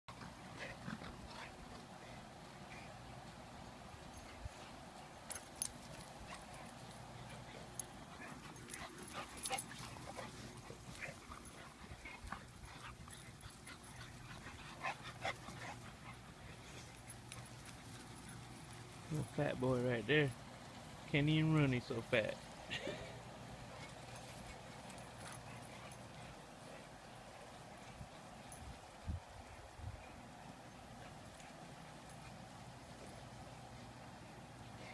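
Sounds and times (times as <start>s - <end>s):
dogs scuffling on grass: 0.1s - 34.9s.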